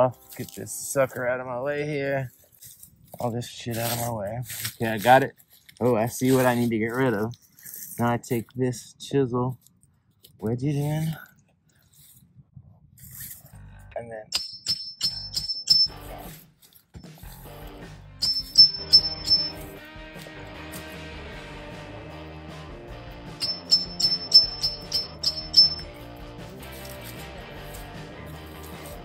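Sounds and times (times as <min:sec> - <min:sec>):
chisel ringing metal clinks: 0:14.3 - 0:16.1, 0:18.2 - 0:19.6, 0:23.4 - 0:25.9
background guitar music: 0:17.4 - 0:29.0.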